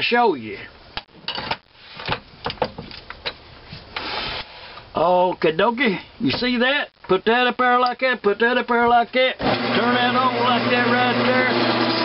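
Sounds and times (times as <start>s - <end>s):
metal scraping rub: 4.0s - 4.7s.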